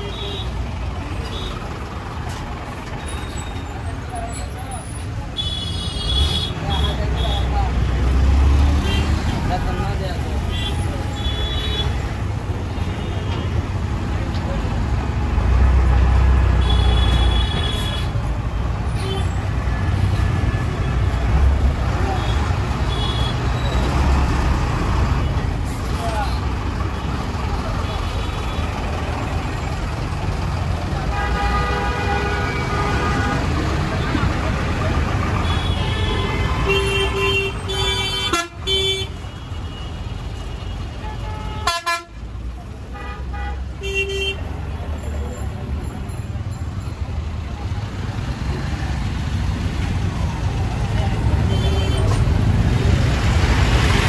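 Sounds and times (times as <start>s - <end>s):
traffic engine rumble: 0.0s - 54.0s
vehicle horns honking: 16.6s - 18.1s, 31.0s - 33.6s, 35.4s - 40.0s, 40.6s - 42.2s, 42.9s - 44.5s.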